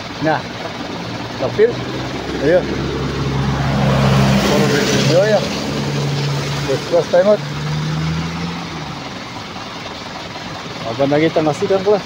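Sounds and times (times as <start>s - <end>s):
truck engine running: 0.0s - 12.0s.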